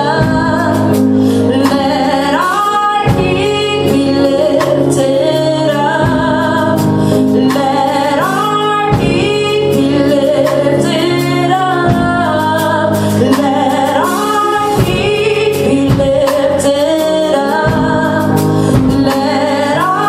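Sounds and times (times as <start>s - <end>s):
sustained keyboard chords: 0.0s - 20.0s
woman singing gospel song: 0.0s - 20.0s.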